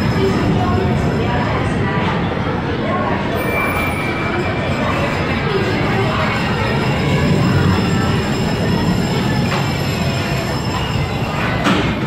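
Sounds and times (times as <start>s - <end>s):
roller coaster cars rumbling: 0.0s - 12.0s.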